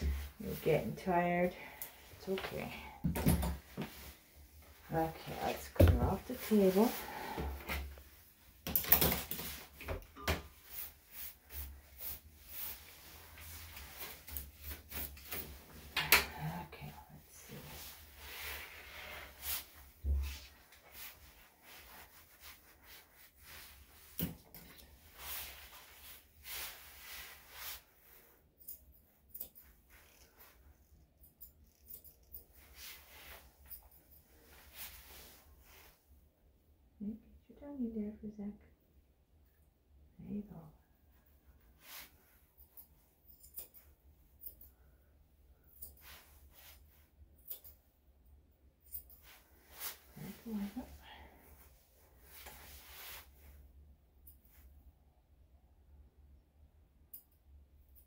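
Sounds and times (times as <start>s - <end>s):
hand brush sweeping: 10.6s - 15.4s, 49.3s - 53.4s.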